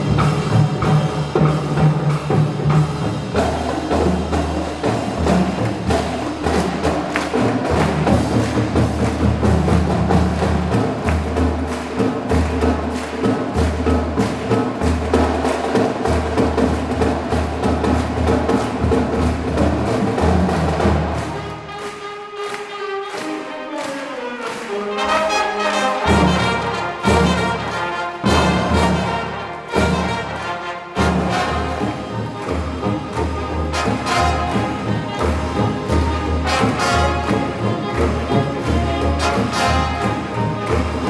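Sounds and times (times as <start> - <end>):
marching drum beat: 0.0 - 21.9, 26.0 - 41.0
marching band playing: 0.0 - 41.0.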